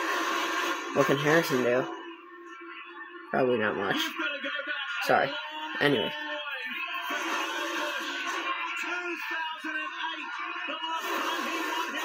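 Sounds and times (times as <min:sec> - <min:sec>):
race broadcast from television: 0:00.0 - 0:12.0.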